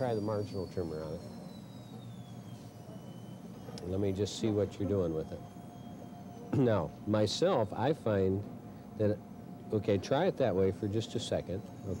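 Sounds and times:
faint high whine: 0.0s - 12.0s
low background hum: 0.0s - 12.0s.

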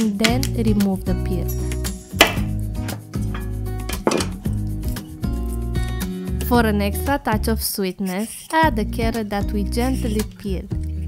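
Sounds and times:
knife knocking on wooden board: 2.2s - 4.4s.

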